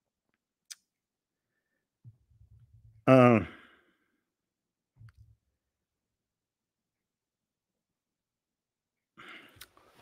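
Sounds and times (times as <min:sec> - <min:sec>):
man sighing: 0:03.0 - 0:04.1, 0:09.2 - 0:09.7.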